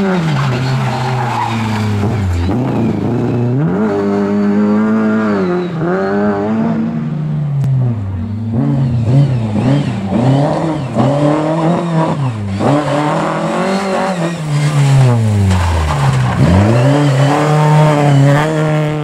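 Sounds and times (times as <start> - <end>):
rally car engine revving: 0.0 - 19.0.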